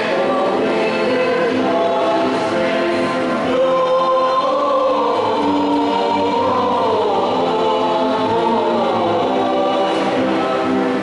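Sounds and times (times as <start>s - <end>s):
church choir singing a hymn: 0.0s - 11.0s.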